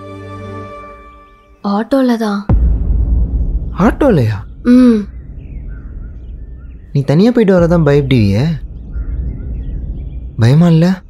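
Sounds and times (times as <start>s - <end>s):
low steady rumble: 2.5s - 11.0s
faint bird chirps: 3.0s - 11.0s.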